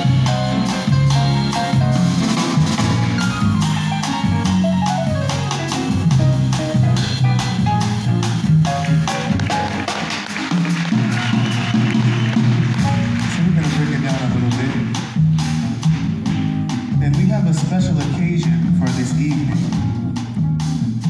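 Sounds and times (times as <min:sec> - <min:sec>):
upright double bass: 0:00.0 - 0:10.3, 0:10.9 - 0:21.0
grand piano: 0:00.0 - 0:21.0.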